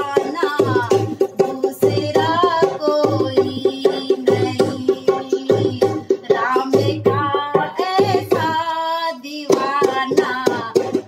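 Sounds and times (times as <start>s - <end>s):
hand drum: 0.0s - 11.0s
woman singing devotional song: 0.0s - 11.0s.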